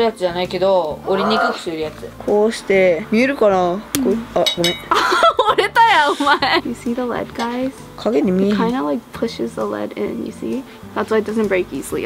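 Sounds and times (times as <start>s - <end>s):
people laughing: 4.9s - 6.8s.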